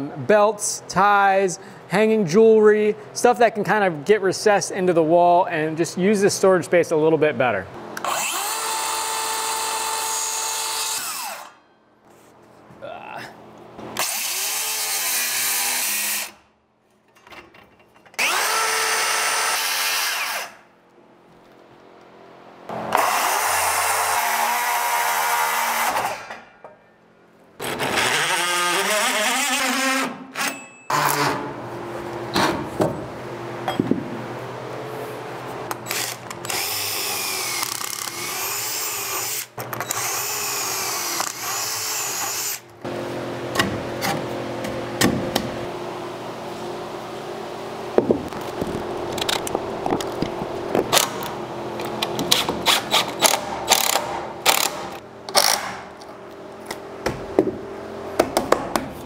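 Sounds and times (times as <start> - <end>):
power saw cutting wood: 8.0 - 11.6, 14.0 - 16.4, 18.2 - 20.6, 22.7 - 26.4, 27.6 - 30.2.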